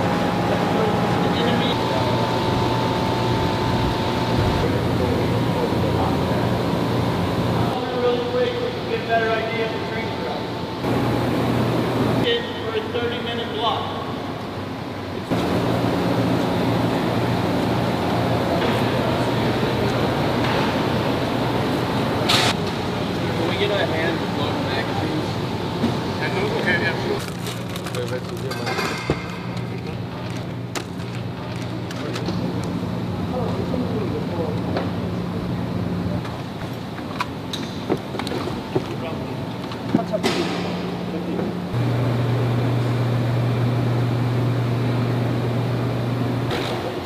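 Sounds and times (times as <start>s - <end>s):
mechanical hum and rush: 0.0s - 47.0s.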